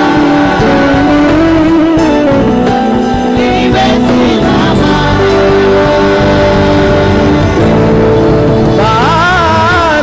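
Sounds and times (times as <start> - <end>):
live gospel band instrumental: 0.0 - 10.0.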